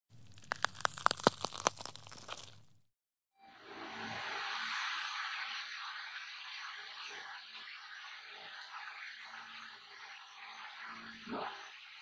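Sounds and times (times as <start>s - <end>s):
crisp food crunching: 0.1s - 2.8s.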